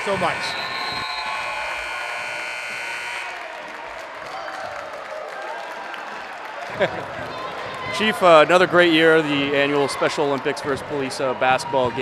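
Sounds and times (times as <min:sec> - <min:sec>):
crowd applauding and cheering: 0:00.5 - 0:12.0.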